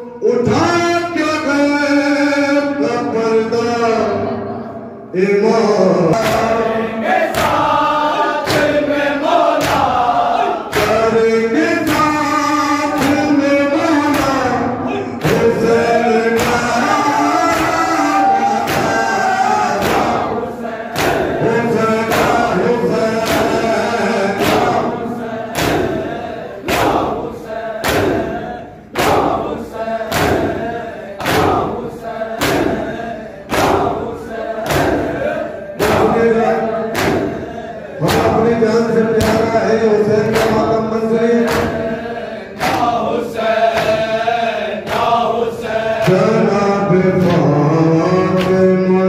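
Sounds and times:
men chanting in chorus: 0.0 - 49.0
people beating chests in unison: 6.1 - 48.8
hands slapping chests: 6.2 - 6.6, 7.3 - 7.7, 9.5 - 10.0, 10.6 - 11.0, 16.4 - 16.8, 17.4 - 19.1, 19.7 - 21.4, 23.2 - 23.7, 24.4 - 27.2, 27.8 - 28.4, 29.0 - 31.8, 32.4 - 32.9, 33.5 - 35.2, 36.9 - 37.4, 40.2 - 40.7, 41.4 - 41.9, 42.6 - 43.0, 47.2 - 47.5.

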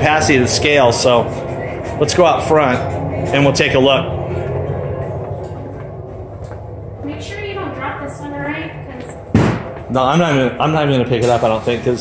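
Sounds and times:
sharp thump: 9.3 - 9.8.

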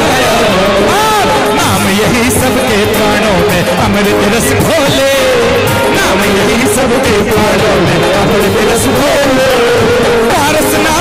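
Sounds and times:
drums: 0.0 - 11.0.

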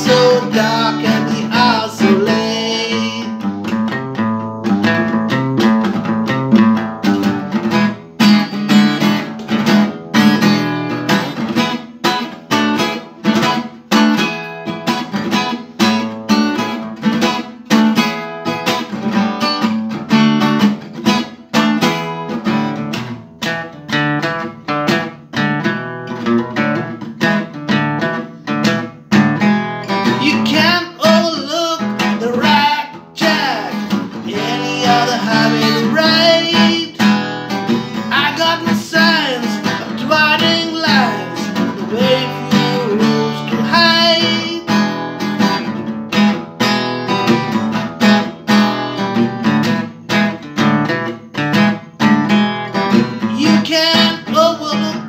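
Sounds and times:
man singing: 0.0 - 3.6, 30.0 - 45.0, 53.2 - 55.0
acoustic guitar strumming: 0.0 - 55.0.

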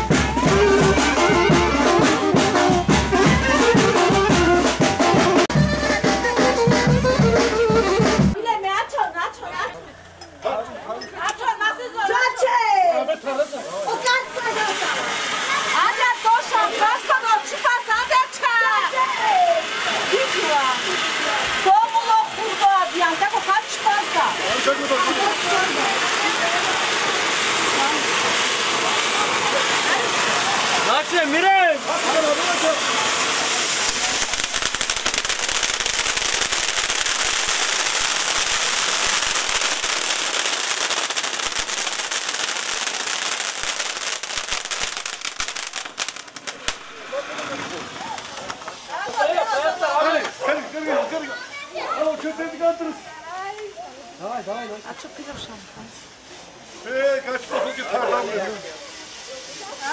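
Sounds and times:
fountain fireworks hissing: 0.0 - 59.9.

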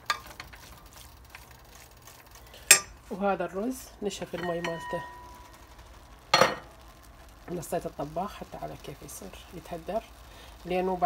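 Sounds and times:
cookware clinking on stovetop: 0.0 - 0.5, 2.7 - 3.0, 4.4 - 5.5, 6.4 - 6.7.

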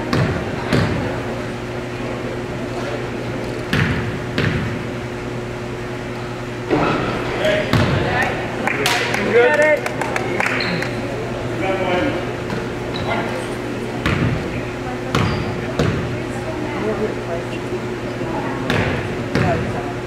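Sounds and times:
spectators' voices: 0.0 - 20.0
basketball bouncing on wooden floor: 3.7 - 4.7, 7.7 - 8.0, 14.0 - 14.4, 15.1 - 16.1.

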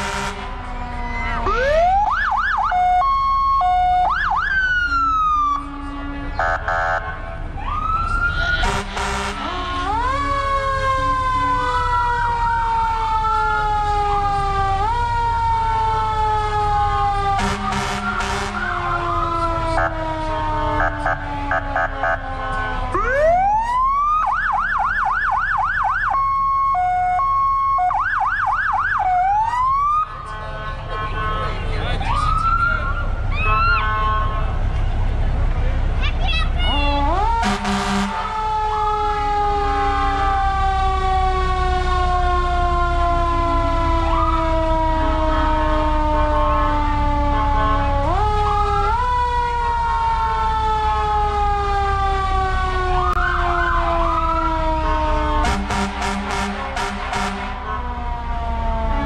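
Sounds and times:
horn blasts: 0.0 - 0.6, 5.4 - 7.4, 8.5 - 10.2, 17.3 - 18.9, 20.7 - 23.1, 30.2 - 31.8, 33.4 - 34.7, 36.7 - 38.4, 54.9 - 58.0
fast siren yelp: 0.0 - 30.1, 32.0 - 34.0, 36.7 - 59.0
sirens wailing: 0.0 - 59.0.

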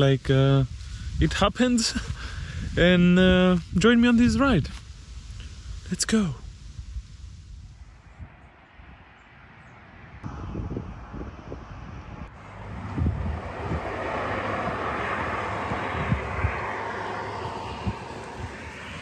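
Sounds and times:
van engine and tyre noise: 8.1 - 19.0.

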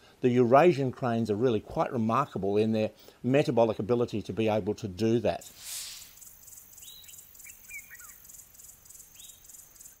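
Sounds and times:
short bird calls: 5.5 - 10.0
insect trill: 5.8 - 10.0.

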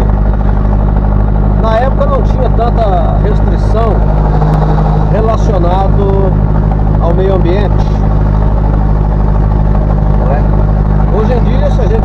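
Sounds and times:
road noise: 0.0 - 12.0
vehicle engine running: 0.0 - 12.0.

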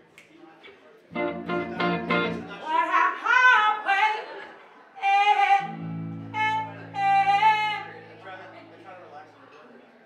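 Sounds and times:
electric guitar chords: 1.1 - 2.6, 5.6 - 8.8
bass chords: 1.2 - 2.6
woman singing: 5.0 - 7.9.

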